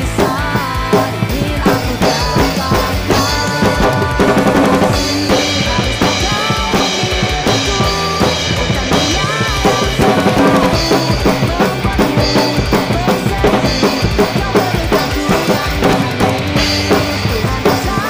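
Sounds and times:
drum kit rock beat: 0.0 - 18.0
pop punk backing track: 0.0 - 18.0.

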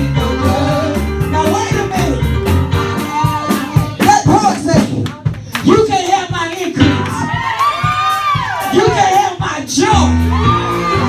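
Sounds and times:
voices singing over microphone: 0.0 - 1.7
steady beat: 0.0 - 11.0
congregation whooping and shouting: 6.9 - 11.0.

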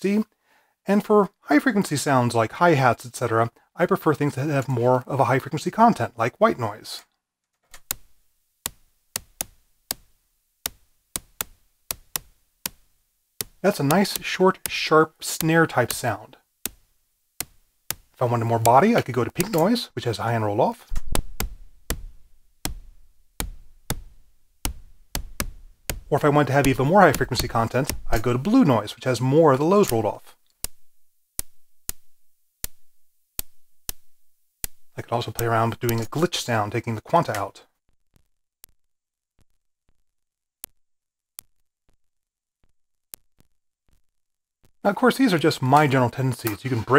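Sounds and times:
sharp snare-like noise hits: 20.9 - 22.2.

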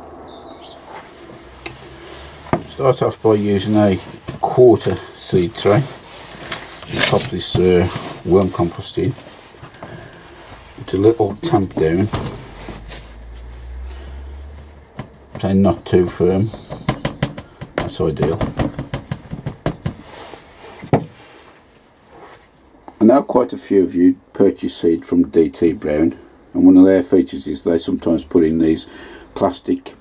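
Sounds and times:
low steady rumble: 1.2 - 16.6.

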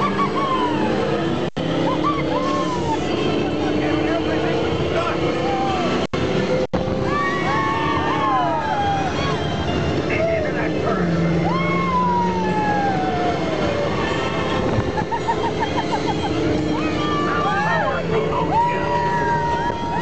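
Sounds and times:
people laughing: 0.0 - 0.8, 1.7 - 4.3, 12.0 - 20.0
ride car running on track: 0.0 - 20.0
riders whooping and screaming: 0.0 - 20.0.

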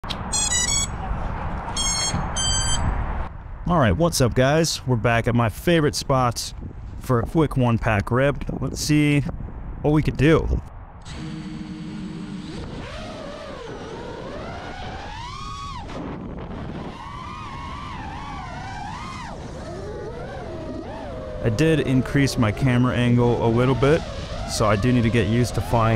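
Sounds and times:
short electronic beeps: 0.2 - 1.0, 1.7 - 3.0
drone motors and propellers whining: 11.0 - 25.9.

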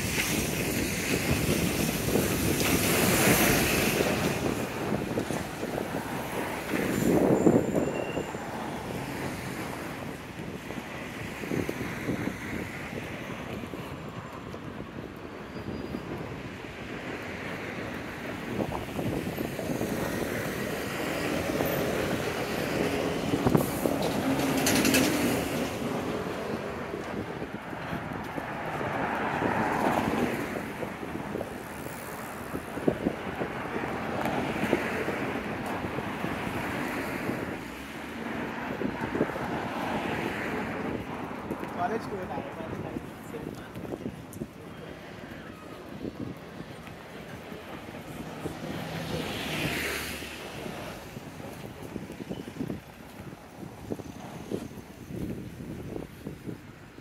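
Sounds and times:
traffic passing: 0.0 - 57.0.

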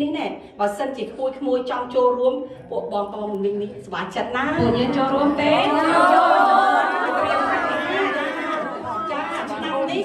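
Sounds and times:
women chattering: 4.7 - 10.0.

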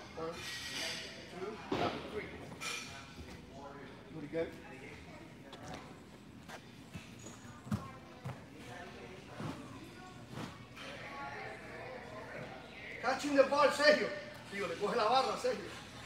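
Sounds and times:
faint distant voices: 0.0 - 16.0.

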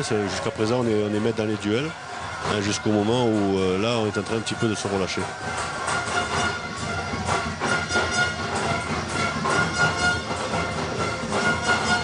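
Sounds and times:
stadium crowd noise: 0.0 - 12.0
horn tones from crowd: 4.4 - 12.0.

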